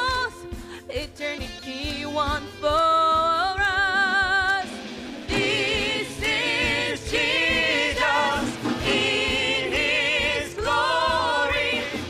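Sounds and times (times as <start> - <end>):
woman singing into a microphone: 0.0 - 4.7.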